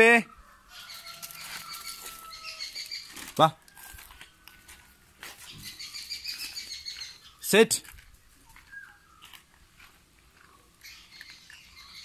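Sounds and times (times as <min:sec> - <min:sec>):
birds chirping and whistling: 0:00.7 - 0:03.2, 0:05.4 - 0:07.5, 0:08.4 - 0:09.5, 0:10.5 - 0:12.0
scuffing and rustling: 0:00.9 - 0:10.6.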